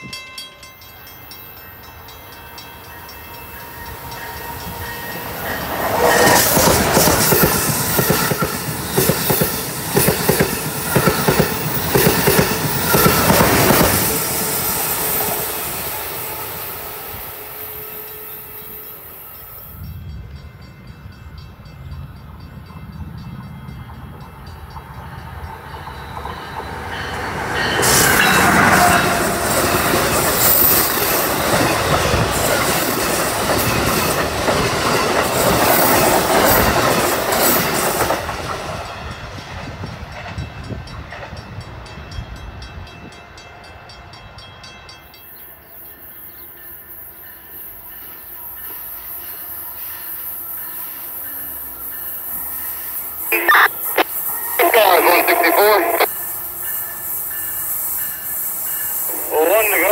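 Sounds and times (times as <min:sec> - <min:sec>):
train passing at speed: 0:00.0 - 0:59.9.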